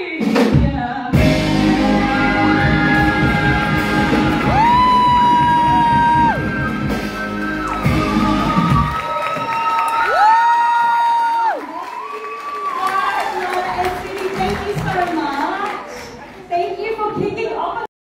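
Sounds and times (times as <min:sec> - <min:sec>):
live band playing pop: 0:00.0 - 0:10.5, 0:12.9 - 0:16.2
women singing long high notes: 0:01.1 - 0:06.4
audience cheering and whooping: 0:02.0 - 0:15.0.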